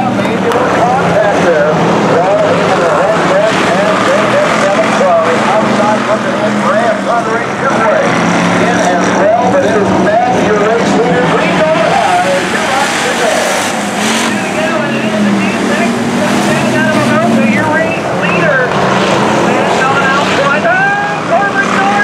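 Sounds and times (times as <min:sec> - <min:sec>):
people talking: 0:00.0 - 0:18.8, 0:19.4 - 0:22.0
race car engines running: 0:00.0 - 0:22.0.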